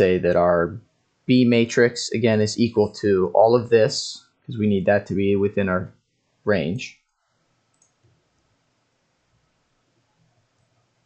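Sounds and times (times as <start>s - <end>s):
faint computer clicks: 7.0s - 8.2s.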